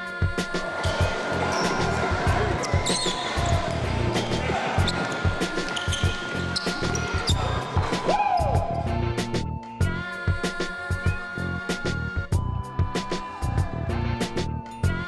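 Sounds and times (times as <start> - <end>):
background music: 0.0 - 15.0
players' voices: 0.2 - 9.0
basketball bouncing on court: 0.8 - 8.0.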